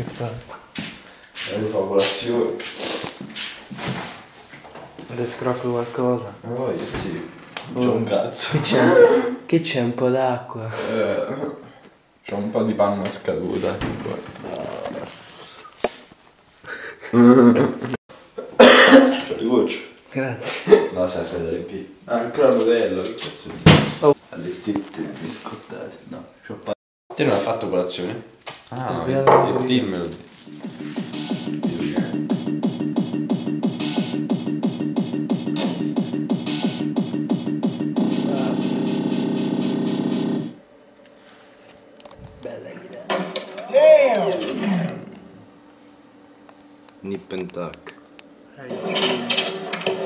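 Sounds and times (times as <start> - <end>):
person laughing: 16.7 - 18.0
person coughing loudly: 18.5 - 19.3
electronic music with pulsing beat: 30.4 - 40.6.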